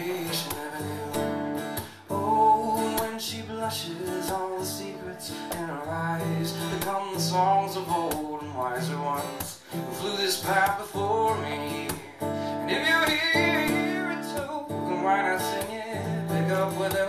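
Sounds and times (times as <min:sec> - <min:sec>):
acoustic guitar strumming: 0:00.0 - 0:17.0.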